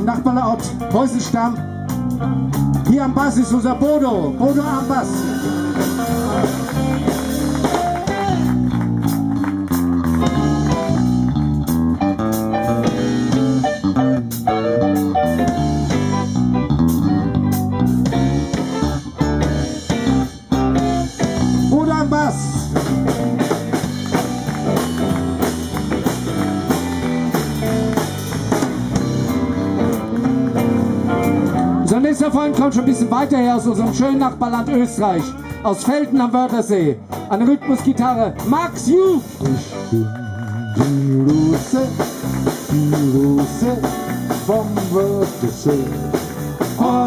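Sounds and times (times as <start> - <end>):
drums: 0.0 - 47.0
electric bass guitar line: 0.0 - 47.0
electric guitars: 0.0 - 47.0
rock band playing live: 0.0 - 47.0.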